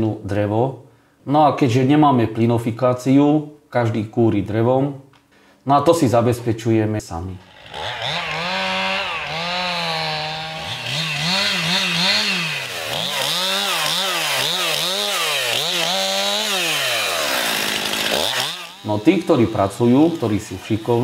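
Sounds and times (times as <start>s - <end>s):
chainsaw revving: 7.4s - 21.0s.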